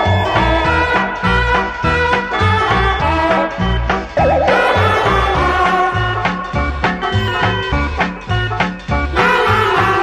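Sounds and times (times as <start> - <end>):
background music with bouncy bass: 0.0 - 10.0.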